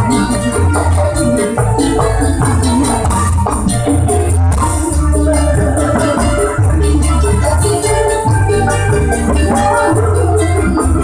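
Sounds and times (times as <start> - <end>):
live band playing dance music: 0.0 - 11.0.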